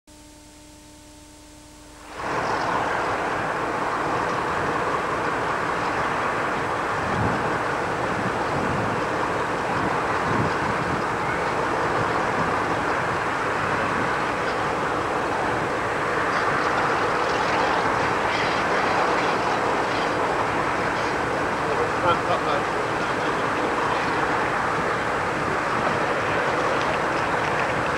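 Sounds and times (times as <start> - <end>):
diesel train running: 2.1 - 27.9.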